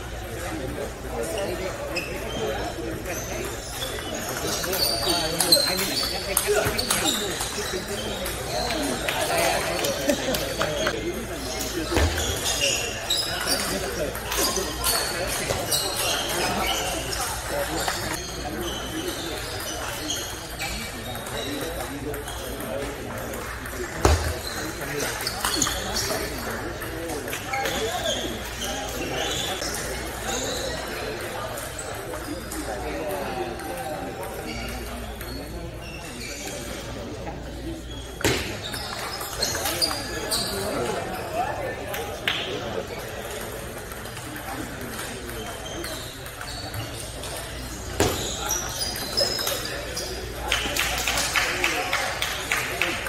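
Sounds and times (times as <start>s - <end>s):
background talk in a hall: 0.0s - 53.0s.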